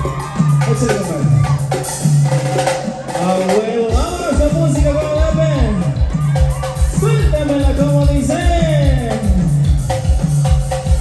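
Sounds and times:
bass line: 0.0s - 11.0s
drum strikes: 0.0s - 11.0s.

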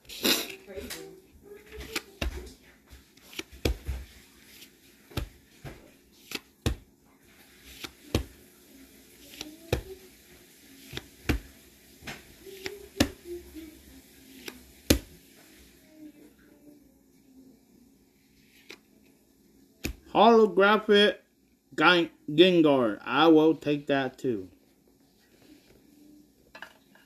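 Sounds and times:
cards clicking and snapping: 1.7s - 2.5s, 3.2s - 6.9s, 7.5s - 8.4s, 10.8s - 11.5s, 12.1s - 13.2s, 14.3s - 15.1s.

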